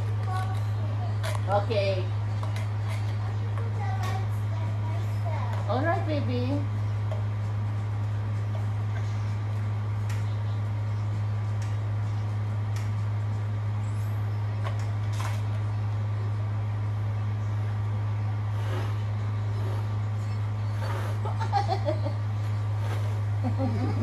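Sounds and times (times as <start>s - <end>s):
motor humming: 0.0s - 24.0s.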